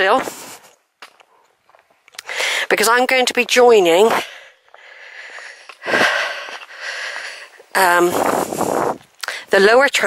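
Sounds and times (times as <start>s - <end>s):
person breathing while walking: 0.3s - 2.7s, 4.1s - 9.5s.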